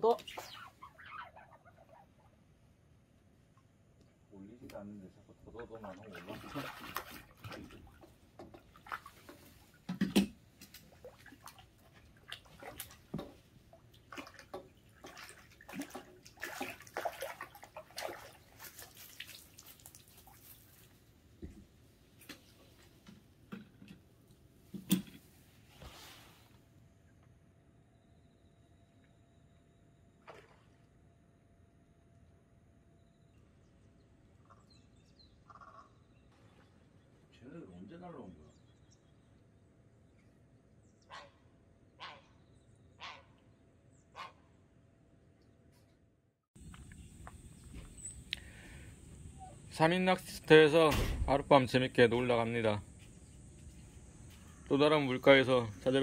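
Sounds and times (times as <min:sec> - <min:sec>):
water splashes and drips: 0:05.7 - 0:25.4, 0:30.2 - 0:30.8.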